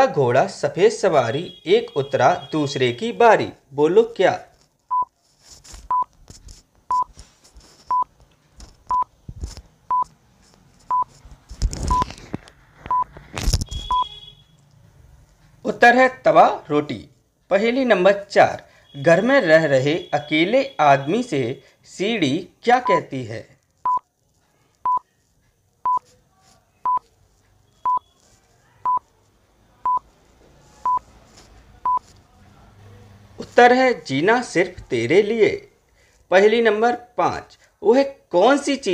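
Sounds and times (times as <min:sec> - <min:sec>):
short single-pitched beeps: 0:12.9 - 0:13.1, 0:13.7 - 0:14.6, 0:27.7 - 0:28.2.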